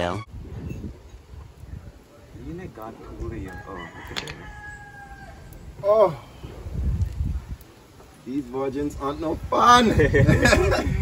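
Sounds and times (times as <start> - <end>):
rooster crowing: 3.4 - 5.6.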